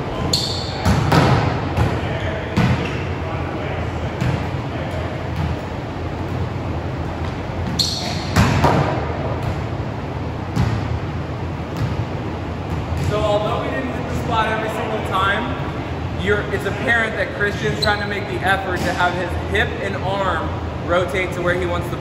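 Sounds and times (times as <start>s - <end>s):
volleyball hit slap: 0.8s - 2.0s, 8.2s - 9.6s.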